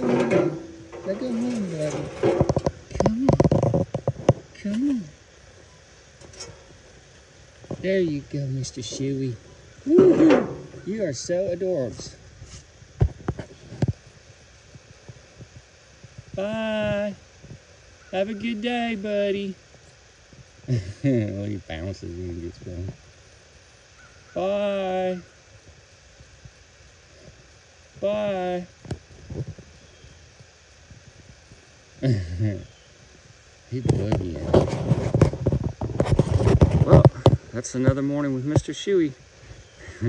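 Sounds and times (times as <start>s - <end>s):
man speaking: 0.0s - 3.5s, 4.6s - 5.2s, 7.8s - 12.2s
low steady rumble: 0.0s - 13.0s
faint rustle: 0.0s - 40.0s.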